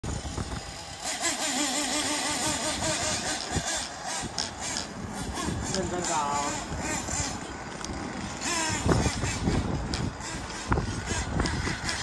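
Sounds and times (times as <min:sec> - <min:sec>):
small engine revving: 0:00.1 - 0:12.0.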